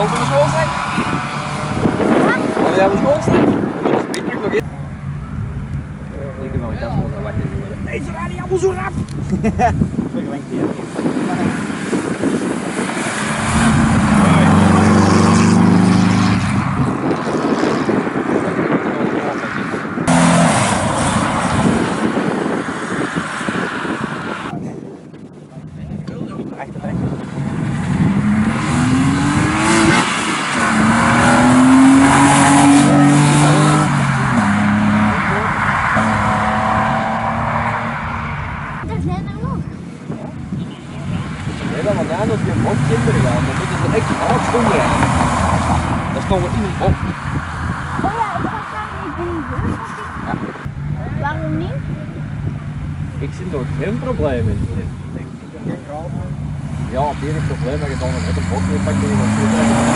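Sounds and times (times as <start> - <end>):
rally cars accelerating hard: 0.0 - 4.6, 7.2 - 24.5, 26.9 - 39.0, 40.2 - 59.9.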